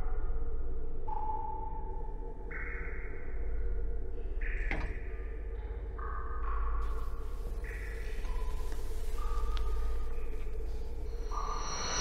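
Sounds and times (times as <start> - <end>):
low drone: 6.8 - 12.0
sustained electronic tones: 6.9 - 12.0.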